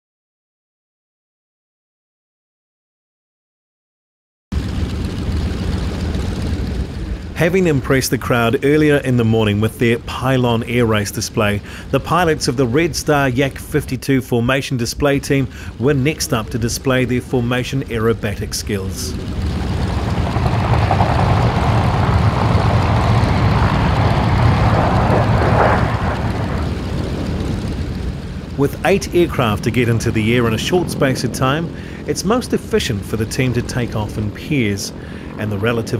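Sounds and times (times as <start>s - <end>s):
radial aircraft engines running: 4.5s - 35.9s.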